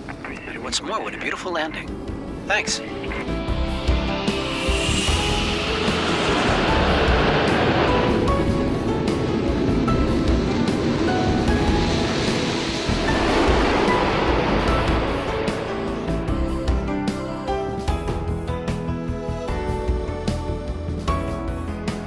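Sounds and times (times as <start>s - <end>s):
jet engines roaring: 0.0s - 17.9s
background music: 0.0s - 22.0s.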